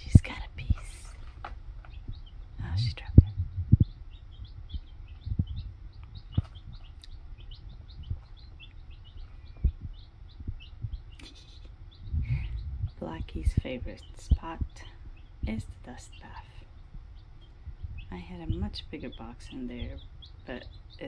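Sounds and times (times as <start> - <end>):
soft low thuds: 0.0 - 20.9
baby chicks peeping: 0.0 - 21.0.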